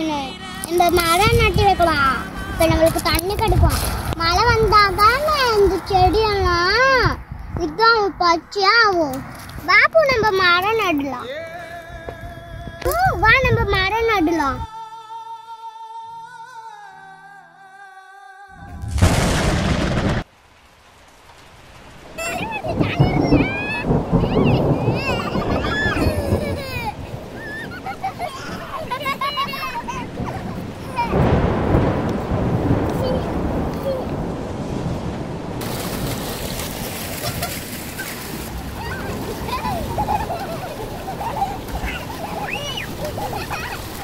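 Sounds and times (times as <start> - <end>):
loud thunderclap: 18.6 - 20.3, 22.0 - 27.9, 29.7 - 44.0
water rushing: 18.6 - 44.0.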